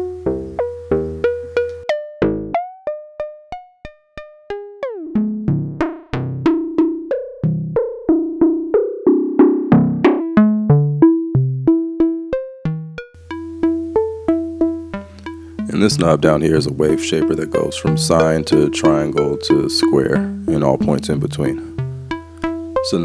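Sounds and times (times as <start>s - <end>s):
synth melody of plucked notes: 0.0s - 23.0s.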